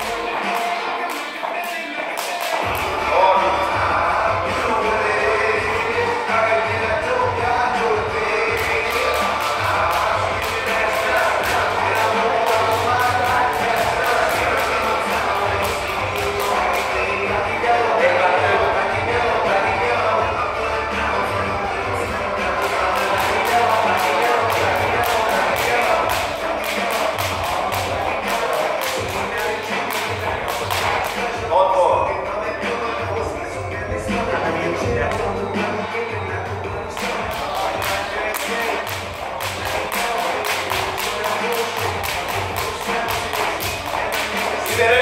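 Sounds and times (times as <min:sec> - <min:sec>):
jump rope slapping floor: 0:00.0 - 0:02.9, 0:08.5 - 0:17.0, 0:22.6 - 0:31.5, 0:37.0 - 0:45.0
background music: 0:00.0 - 0:45.0.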